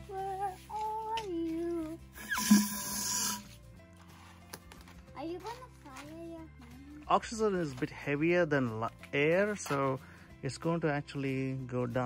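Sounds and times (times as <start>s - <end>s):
faint background music: 0.0s - 12.0s
gas hissing out of balloon: 2.2s - 3.5s.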